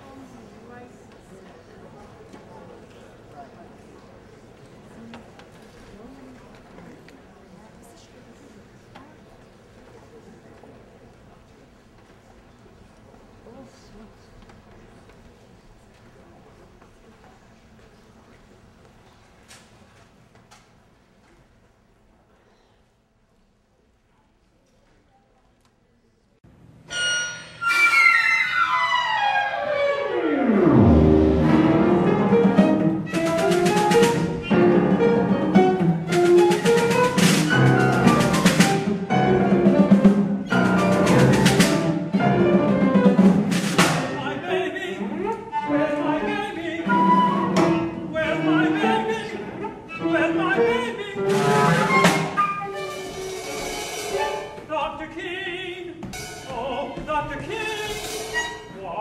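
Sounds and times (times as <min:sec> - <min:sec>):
percussion strikes: 0:26.8 - 0:28.1, 0:30.7 - 0:44.3, 0:51.2 - 0:54.7, 0:56.0 - 0:58.8
bowed strings chords: 0:29.8 - 0:33.2.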